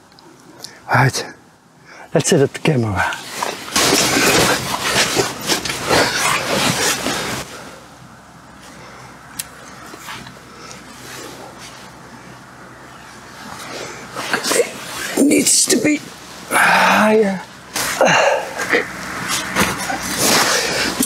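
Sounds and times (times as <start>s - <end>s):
gear being moved: 3.0s - 7.6s, 17.7s - 21.0s
fabric rustling: 3.2s - 7.7s, 13.1s - 21.0s.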